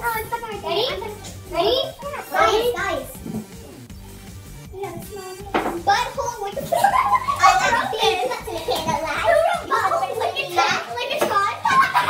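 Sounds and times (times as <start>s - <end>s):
children chattering and giggling: 0.0s - 3.8s, 4.7s - 12.0s.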